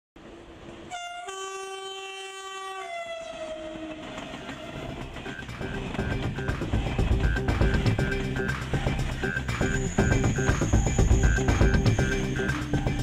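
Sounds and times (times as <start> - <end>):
train on rails: 0.2 - 13.0
train horn blast: 0.9 - 4.8.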